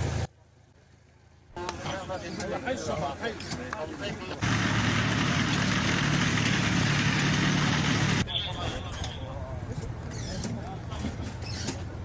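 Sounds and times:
tank engine and tracks: 1.6 - 12.0.

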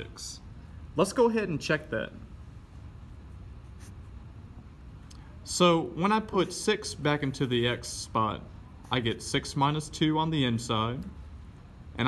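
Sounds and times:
low background hum: 0.0 - 12.0
marker stroke on paper: 3.5 - 4.2.

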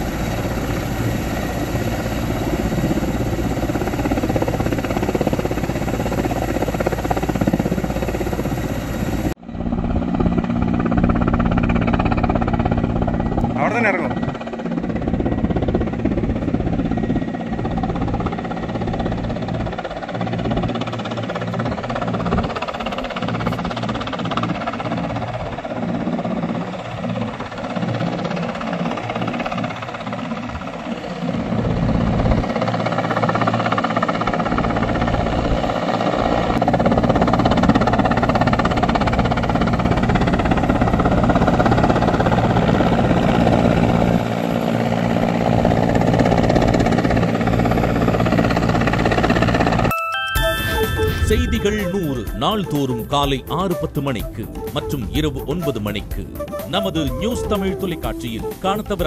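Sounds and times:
helicopter rotor and engine noise: 0.0 - 59.0.

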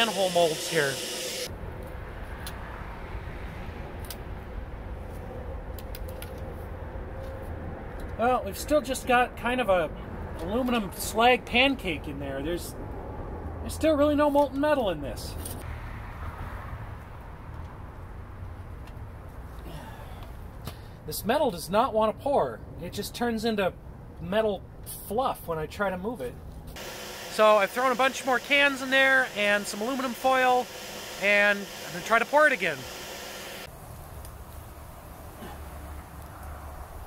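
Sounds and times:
air blower hissing: 0.0 - 1.5, 26.8 - 33.7.

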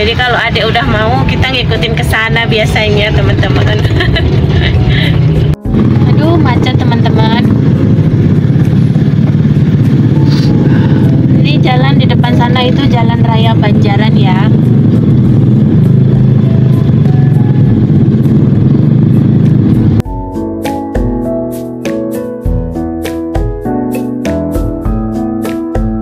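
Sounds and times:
traffic and engines rumbling: 0.0 - 20.1
piano music: 0.0 - 26.0.

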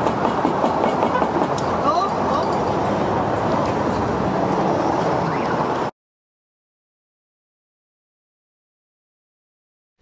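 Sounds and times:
street noise: 0.0 - 5.9.

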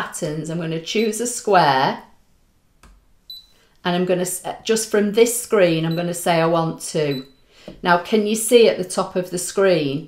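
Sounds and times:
short high beep: 3.3 - 3.5.

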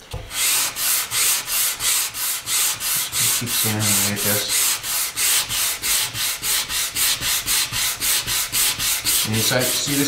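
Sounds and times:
sandpaper rubbing on wood: 0.3 - 10.0.

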